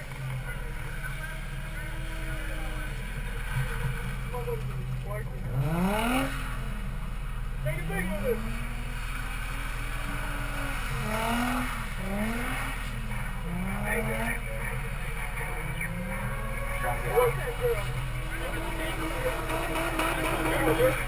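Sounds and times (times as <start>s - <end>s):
car engine revving: 0.0s - 21.0s
low hum of idling engine: 0.0s - 21.0s.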